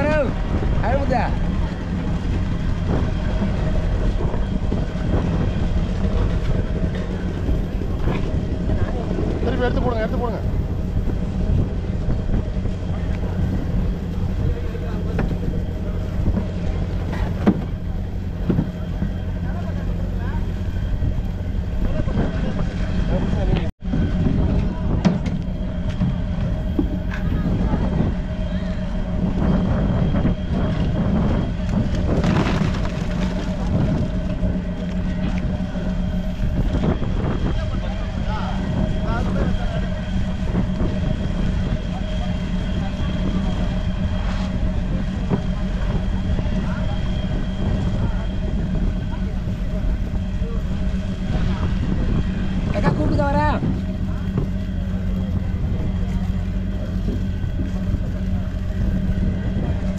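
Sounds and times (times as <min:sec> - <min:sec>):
boat diesel engine humming: 0:00.0 - 0:59.9
faint voices: 0:00.0 - 0:59.9.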